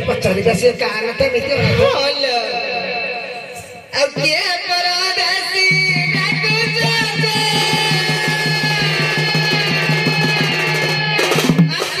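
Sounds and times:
fast drum beat: 4.0 - 12.0.

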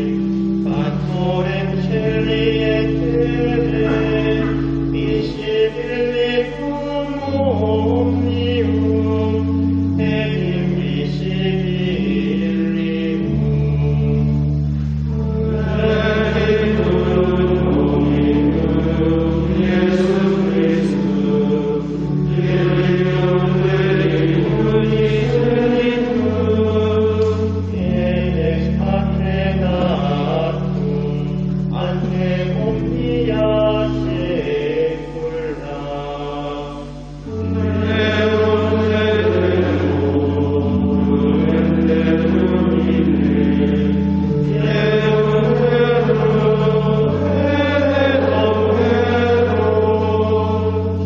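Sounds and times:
sustained organ chords: 0.0 - 51.0
voices singing sacred chant: 0.0 - 51.0.

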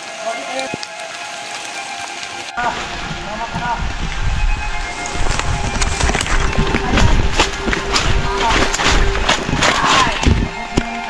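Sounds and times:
rustling undergrowth: 0.0 - 11.0
footsteps: 0.4 - 11.0.

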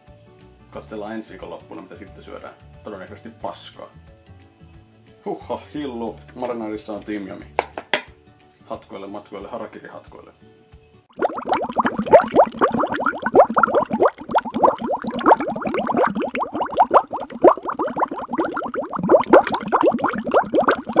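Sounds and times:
liquid bubbling: 11.1 - 21.0.

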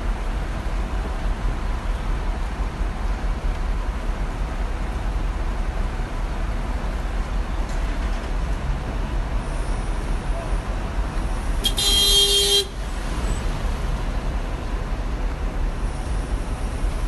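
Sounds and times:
bus engine idling: 0.0 - 17.0
vehicle horn honking: 11.6 - 12.8.

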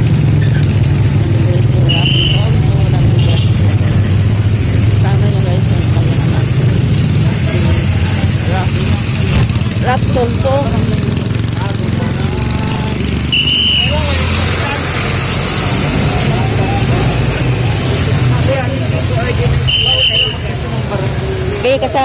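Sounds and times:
motorcycle and vehicle engines: 0.0 - 22.0
background voices: 1.3 - 13.2.

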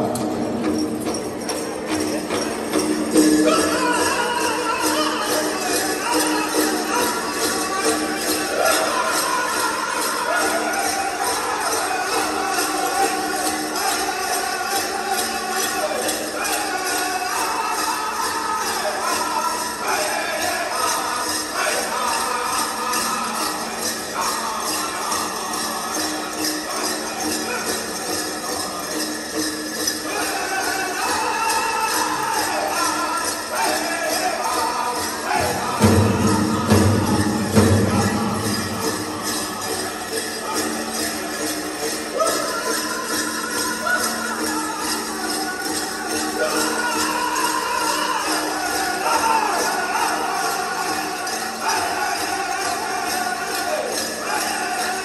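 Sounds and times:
drum group singing: 0.0 - 55.0
jingling bells: 0.0 - 55.0.

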